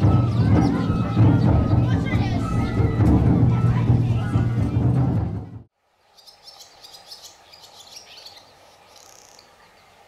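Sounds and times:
children's voices: 0:00.0 - 0:05.7
crowd chatter: 0:00.0 - 0:05.7
music: 0:00.0 - 0:05.7.

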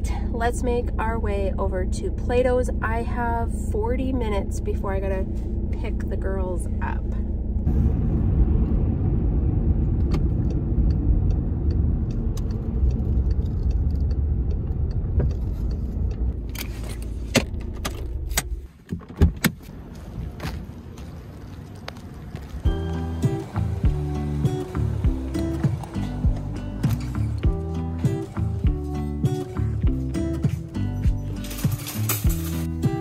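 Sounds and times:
car road noise: 0:00.0 - 0:33.0
engine rumble: 0:00.0 - 0:33.0
background music: 0:22.7 - 0:33.0.

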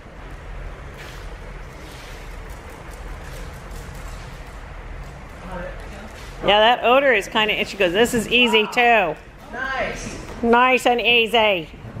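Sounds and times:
low rumble with hiss: 0:00.0 - 0:12.0.

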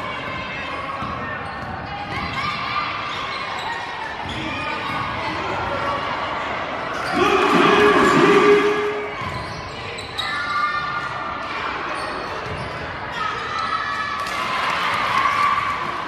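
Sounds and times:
sneakers squeaking: 0:01.0 - 0:05.4, 0:06.9 - 0:11.0, 0:11.9 - 0:13.7
people calling out: 0:07.1 - 0:09.3
loud held tone: 0:07.2 - 0:09.2.

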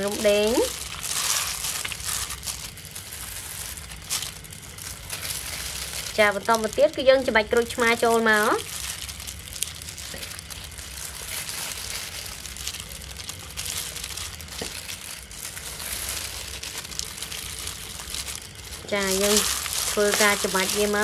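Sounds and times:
plastic glove crinkling: 0:00.0 - 0:21.0.

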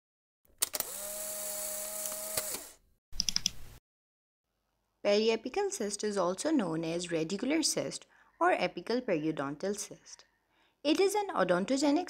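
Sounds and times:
sharp clicks: 0:00.6 - 0:01.0, 0:02.0 - 0:03.6.

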